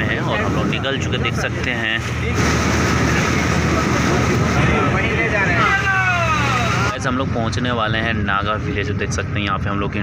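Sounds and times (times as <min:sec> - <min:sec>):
passengers' voices: 0:00.0 - 0:07.0
motorboat engine drone: 0:00.0 - 0:10.0
wind and water noise: 0:00.0 - 0:10.0.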